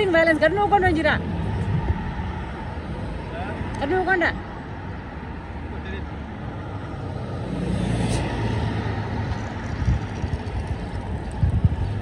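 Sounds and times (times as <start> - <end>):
car passing: 0.0 - 12.0
road traffic rumble: 0.0 - 12.0.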